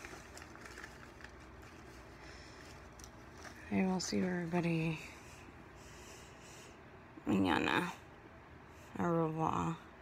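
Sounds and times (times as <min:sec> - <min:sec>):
soft breathing close to microphone: 0:04.9 - 0:07.0.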